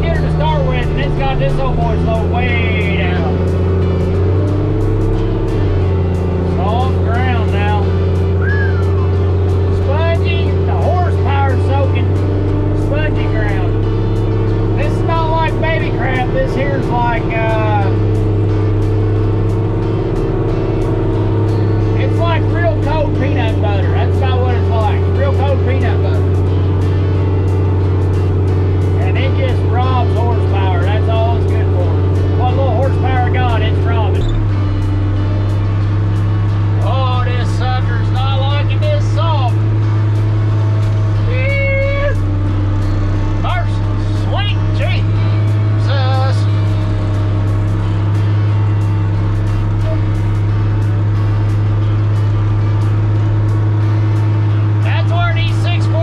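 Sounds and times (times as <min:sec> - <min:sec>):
diesel engine running: 0:00.0 - 0:56.0.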